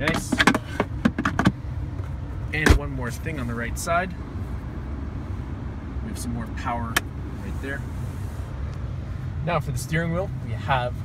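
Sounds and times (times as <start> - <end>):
truck cabin rumble: 0.0 - 11.0.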